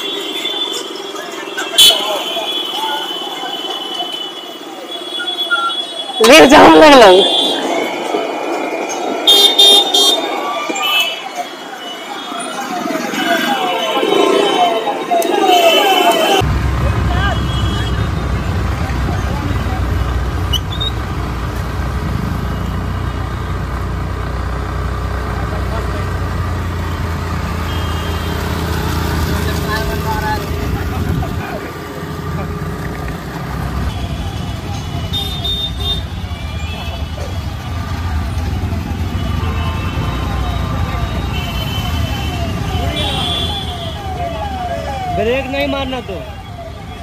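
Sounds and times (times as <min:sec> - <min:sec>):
horns beeping: 0:00.0 - 0:16.5, 0:26.6 - 0:32.8, 0:33.5 - 0:47.0
road noise: 0:00.0 - 0:47.0
siren falling sweeps: 0:11.6 - 0:16.4
motorcycle engines low hum: 0:28.5 - 0:33.9.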